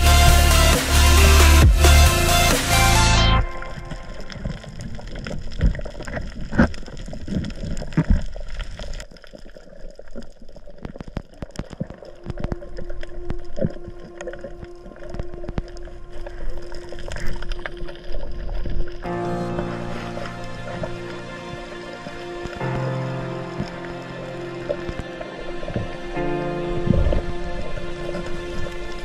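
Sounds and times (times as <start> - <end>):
underwater water movement: 3.2 - 29.0
sharp clicks and crackles: 3.5 - 21.1.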